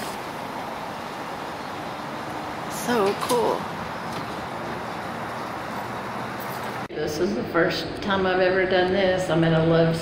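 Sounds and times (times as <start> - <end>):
truck road and engine noise: 0.0 - 6.9.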